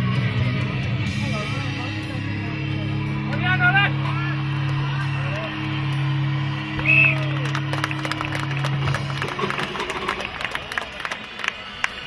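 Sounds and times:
music over a loudspeaker: 0:00.0 - 0:10.6
spectators clapping and cheering: 0:03.3 - 0:12.0.

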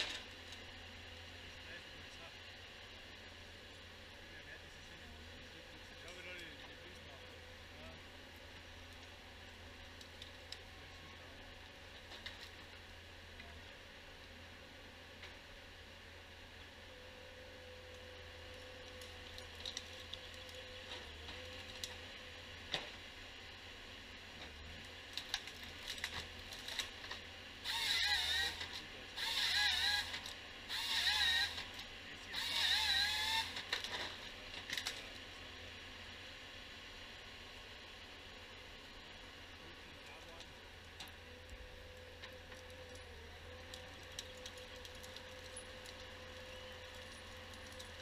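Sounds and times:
hydraulic chain saw cutting: 0:27.6 - 0:34.1.

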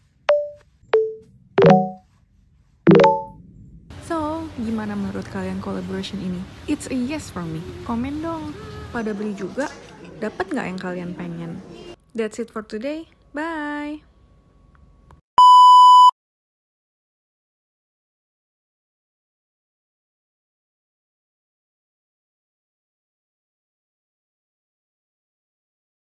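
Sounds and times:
steady test tone beep: 0:00.3 - 0:02.0, 0:02.9 - 0:03.4, 0:15.4 - 0:16.1.

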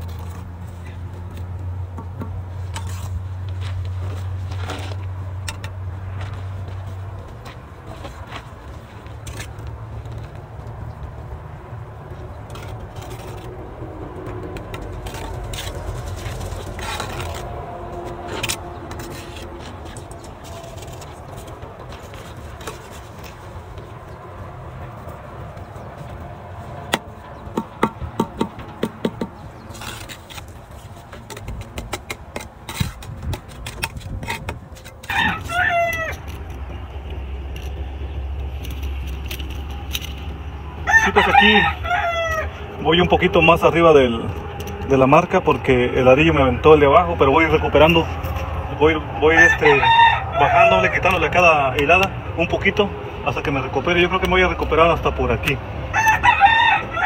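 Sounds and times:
sharp taps of bricks in mortar: 0:26.9 - 0:30.4, 0:31.1 - 0:37.8
rooster crowing: 0:35.0 - 0:36.8, 0:40.8 - 0:43.5, 0:48.4 - 0:51.4, 0:55.8 - 0:57.0.

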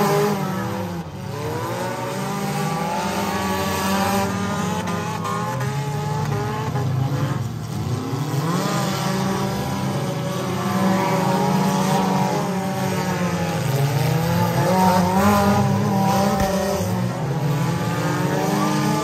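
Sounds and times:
race car engines: 0:00.0 - 0:19.0.

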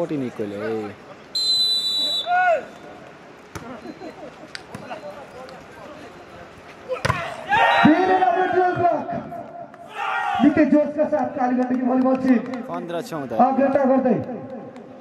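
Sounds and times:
referee's whistle: 0:01.3 - 0:02.9
players and spectators shouting: 0:01.5 - 0:03.0, 0:06.8 - 0:10.8.

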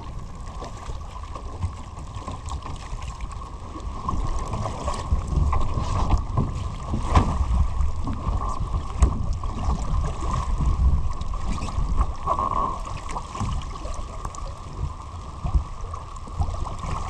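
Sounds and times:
water splashing along hull: 0:00.0 - 0:17.0
wind buffeting microphone: 0:03.9 - 0:13.6.

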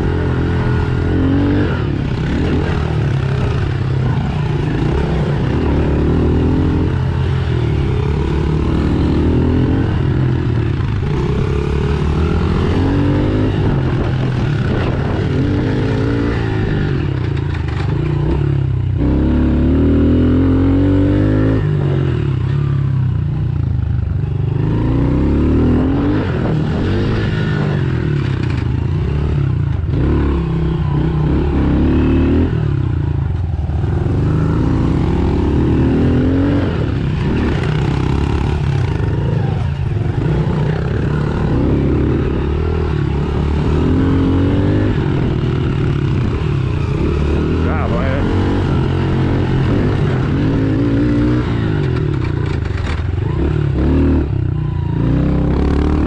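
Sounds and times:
motorbike engine revving: 0:00.0 - 0:56.0.

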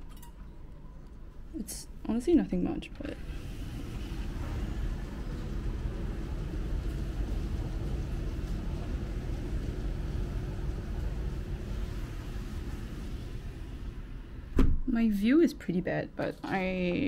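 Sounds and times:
faint constant hum: 0:00.0 - 0:17.0
city traffic rumble: 0:03.2 - 0:17.0.

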